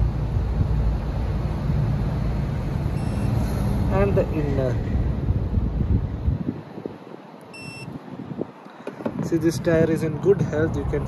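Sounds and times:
high electronic beep: 0:03.0 - 0:03.4, 0:07.5 - 0:07.9.

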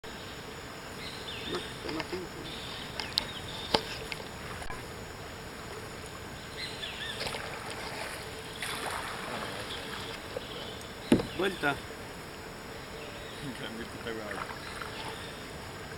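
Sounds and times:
paddle strokes in water: 0:01.4 - 0:15.9
sharp knocks: 0:11.1 - 0:11.6.

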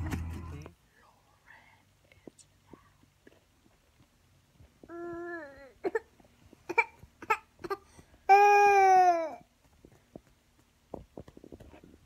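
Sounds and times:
soft whispering: 0:00.7 - 0:03.4.

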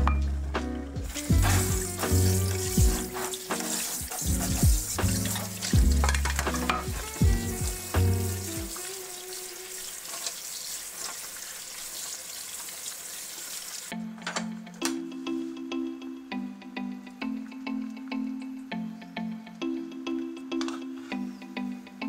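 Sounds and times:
background music: 0:00.0 - 0:09.8, 0:13.9 - 0:22.0
tap water running into sink: 0:01.0 - 0:13.9.

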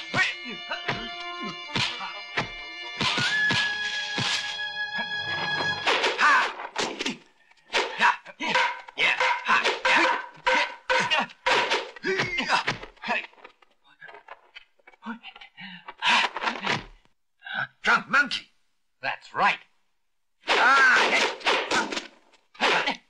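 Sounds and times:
fighters shouting and grunting: 0:00.0 - 0:03.5, 0:05.9 - 0:14.2, 0:15.0 - 0:17.0, 0:20.4 - 0:23.0
punch and staff-strike thuds: 0:20.5 - 0:22.9.

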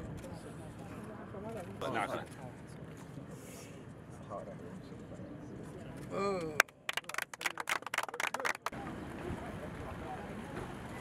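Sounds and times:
steady outdoor hiss: 0:00.0 - 0:11.0
group clapping hands: 0:06.6 - 0:08.8.

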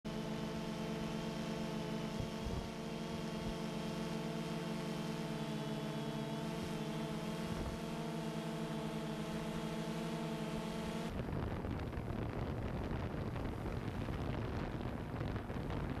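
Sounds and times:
drone propellers humming: 0:00.1 - 0:16.0.

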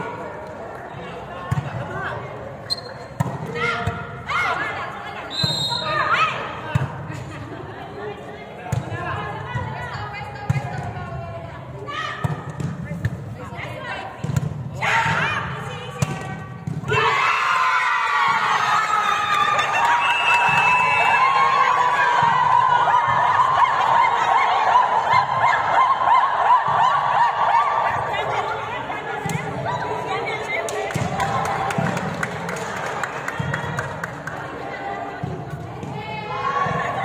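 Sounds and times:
women shouting and cheering: 0:13.6 - 0:31.9, 0:35.8 - 0:37.0.

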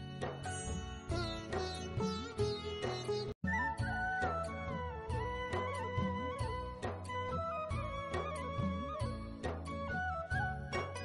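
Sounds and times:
instrumental folk music: 0:00.0 - 0:11.0.

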